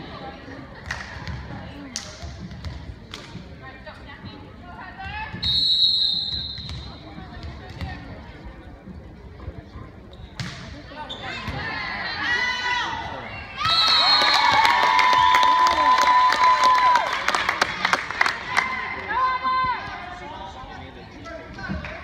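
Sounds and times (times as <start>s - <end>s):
referee's whistle blasts: 5.4s - 7.0s
crowd cheering: 13.6s - 19.8s.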